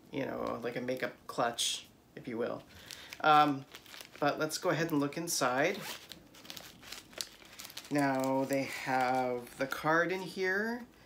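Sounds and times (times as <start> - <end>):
bag crinkling and rustling: 2.6 - 10.4.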